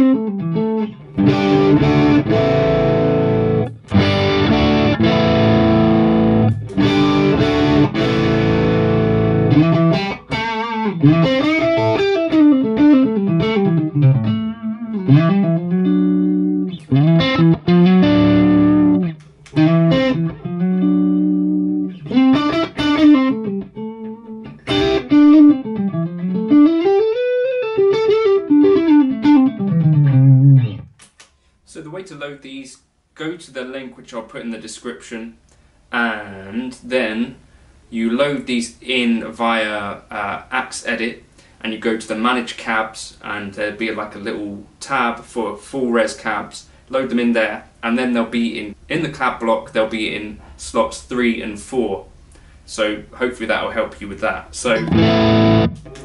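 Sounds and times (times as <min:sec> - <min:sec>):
electric guitar playing: 0:00.0 - 0:31.0, 0:54.7 - 0:56.0.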